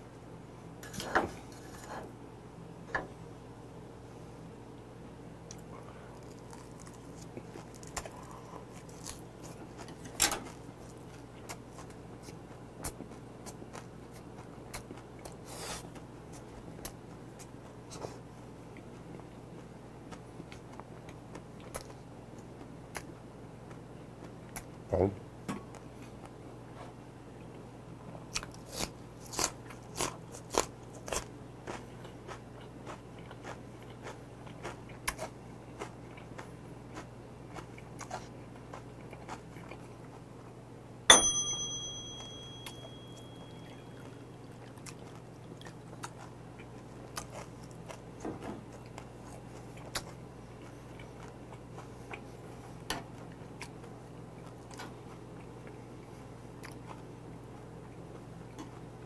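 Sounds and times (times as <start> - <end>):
crunchy chewing: 5.5 - 24.8, 28.3 - 40.6, 43.6 - 58.9
glass clink: 41.1 - 44.1.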